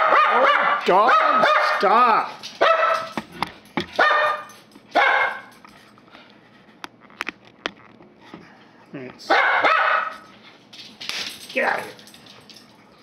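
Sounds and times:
dog barking: 0:00.0 - 0:01.8, 0:02.6 - 0:03.2, 0:04.0 - 0:05.5, 0:09.3 - 0:10.2.

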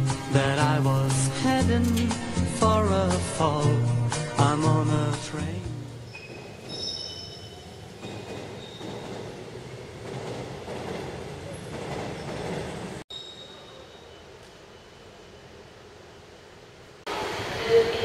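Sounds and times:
train noise on tracks: 0:05.0 - 0:18.0
faint high squealing tones: 0:06.0 - 0:09.2, 0:13.1 - 0:15.5.

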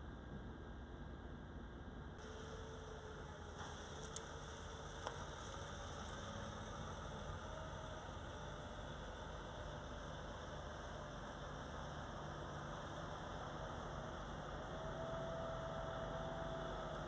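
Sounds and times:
truck engines idling: 0:02.2 - 0:17.0.

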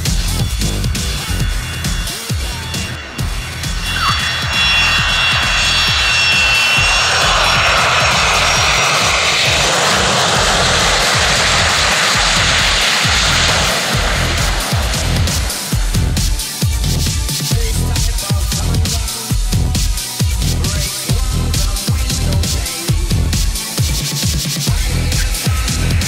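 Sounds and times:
electronic music with steady beat: 0:00.0 - 0:26.0
jet engines whining: 0:00.0 - 0:26.0.

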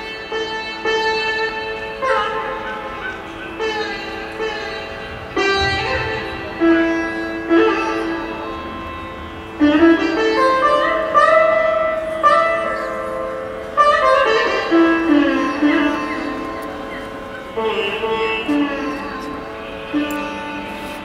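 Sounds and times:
plucked string melody: 0:00.0 - 0:21.0.

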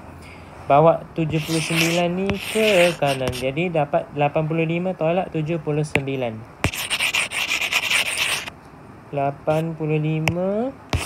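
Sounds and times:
hand rubbing glass screen: 0:01.3 - 0:03.5.

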